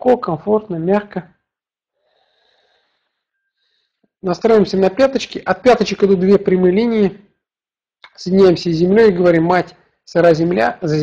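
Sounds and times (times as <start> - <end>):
faint soft breaths: 1.9 - 4.2.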